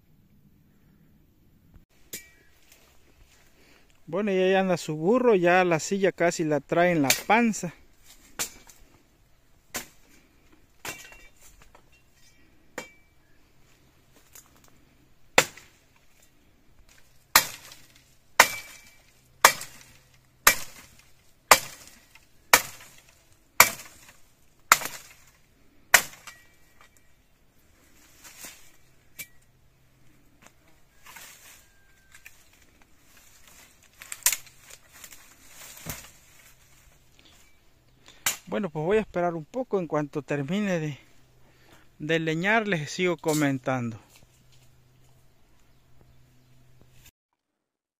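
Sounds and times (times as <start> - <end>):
machete chopping branch: 7.0 - 7.4, 8.1 - 8.8, 9.7 - 10.0, 15.4 - 15.8, 16.9 - 26.9, 33.3 - 36.6, 38.1 - 38.5.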